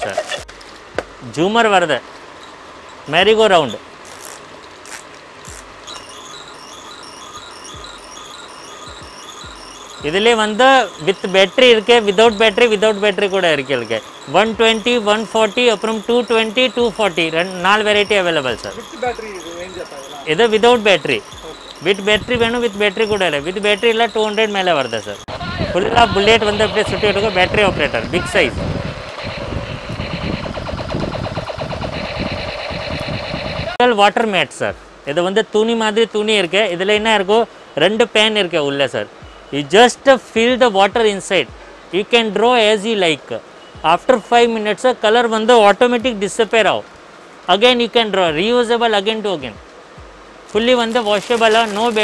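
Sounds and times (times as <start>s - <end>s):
tinny electronic toy tune: 5.5s - 33.7s
toy machine gun firing sound: 29.0s - 33.8s.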